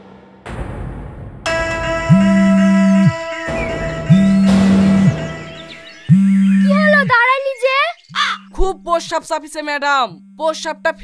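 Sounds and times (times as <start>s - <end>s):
loud low swooping note: 0.0s - 6.7s
sustained higher drone: 1.5s - 8.6s.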